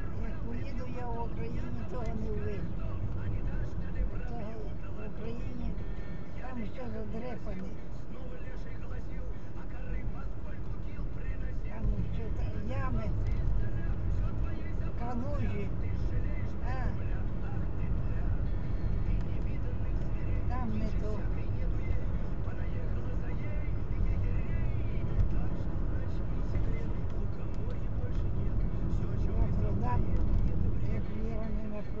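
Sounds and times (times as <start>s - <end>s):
car road and engine rumble: 0.0s - 32.0s
faint voices talking: 0.0s - 32.0s.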